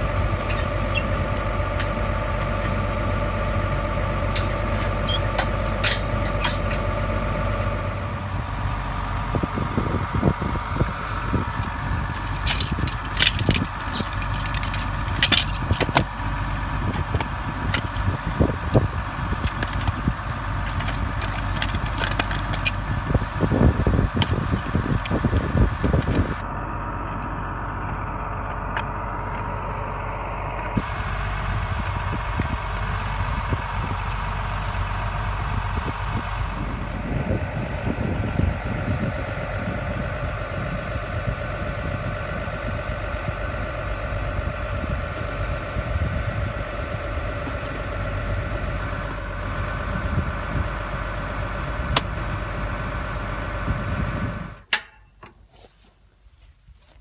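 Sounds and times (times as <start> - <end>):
engine idling: 0.0 - 55.8.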